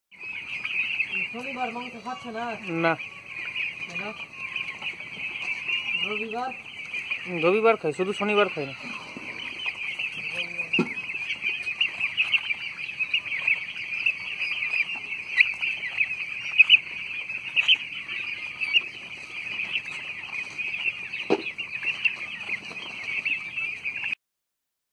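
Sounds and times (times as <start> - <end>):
young turkeys peeping and chirping: 0.1 - 24.2.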